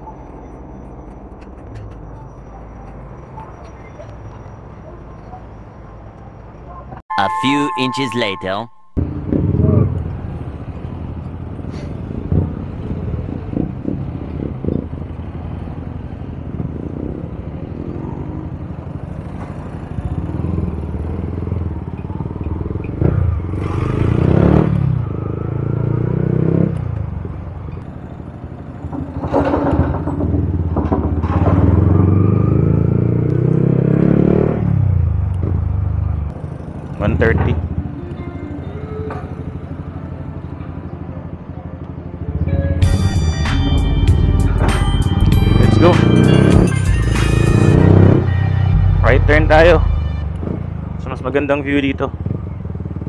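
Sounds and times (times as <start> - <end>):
motorcycle engine revving: 15.2 - 27.2, 28.6 - 37.9, 43.9 - 53.0.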